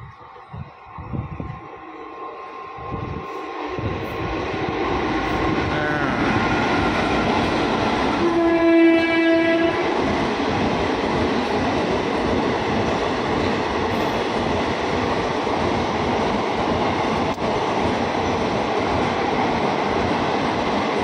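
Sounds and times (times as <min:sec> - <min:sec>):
train rumbling past on rails: 0:00.0 - 0:21.0
train horn: 0:08.2 - 0:10.0.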